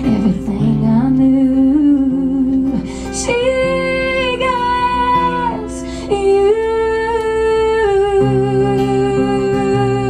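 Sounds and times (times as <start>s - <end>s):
acoustic guitar ballad: 0.0s - 10.0s
woman singing wordless notes: 0.0s - 10.0s.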